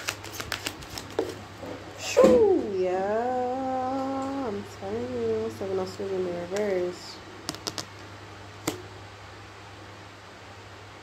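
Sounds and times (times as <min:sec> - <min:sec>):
cards clicking: 0:00.0 - 0:01.2
steady low hum: 0:00.0 - 0:11.0.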